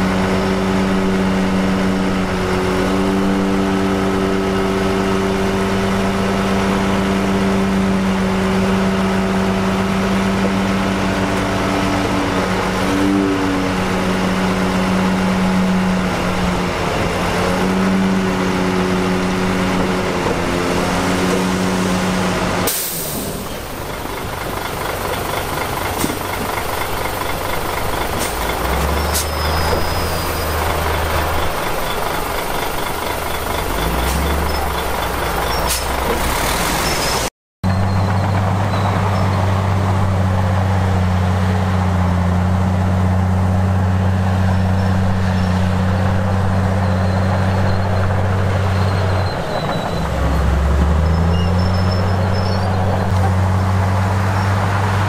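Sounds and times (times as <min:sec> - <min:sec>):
diesel truck engine running: 0:00.0 - 0:55.0
rougher engine noise: 0:00.0 - 0:55.0.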